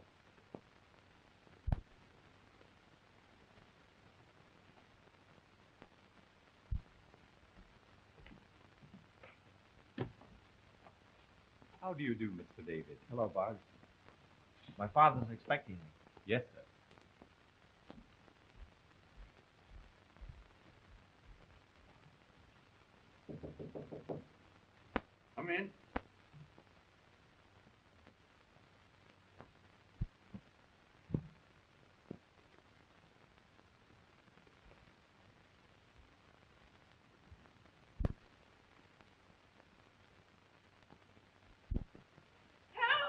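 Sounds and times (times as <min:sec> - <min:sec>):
knocking on wooden door: 0:23.3 - 0:24.3
loud high cry: 0:42.8 - 0:43.0.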